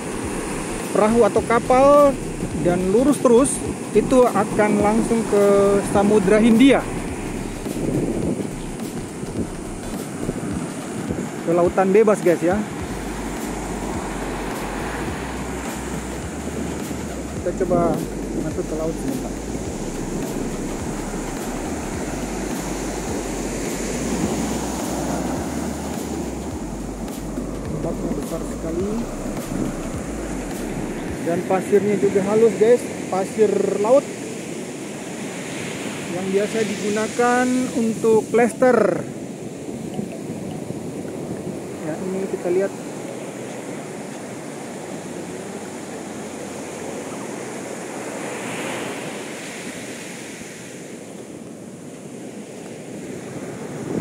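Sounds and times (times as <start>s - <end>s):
surf breaking on beach: 0.0s - 54.0s
wind rumbling on microphone: 0.0s - 54.0s.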